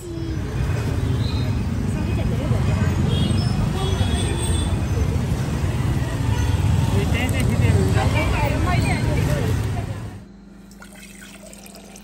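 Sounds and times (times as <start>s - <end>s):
motorbikes: 0.0s - 10.2s.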